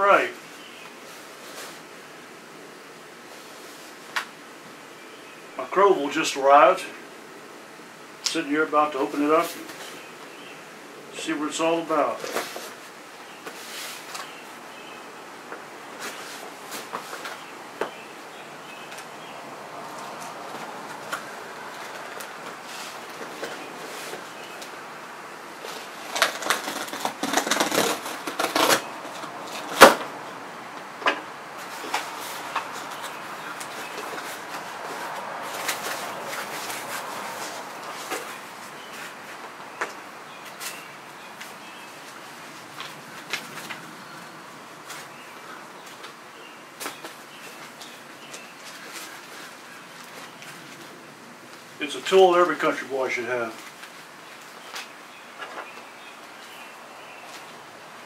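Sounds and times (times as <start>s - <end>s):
cardboard ripping and rustling: 12.2s - 12.8s, 25.6s - 30.1s, 31.6s - 39.4s
packing paper rustling: 25.6s - 30.0s, 31.6s - 43.8s
cardboard scraping and clicking: 25.6s - 30.1s.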